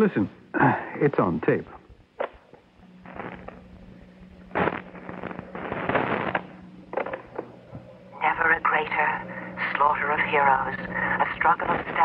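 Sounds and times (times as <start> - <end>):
tape recorder motor hum: 1.8 - 12.0.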